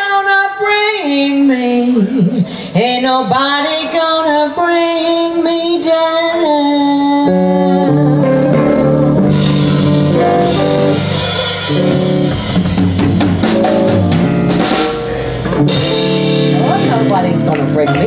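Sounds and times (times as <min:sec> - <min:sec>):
blues band playing: 0:05.1 - 0:18.0.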